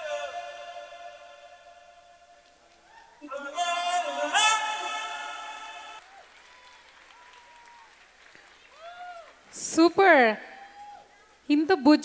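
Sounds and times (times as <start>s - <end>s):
faint audience applause: 6.0s - 9.6s.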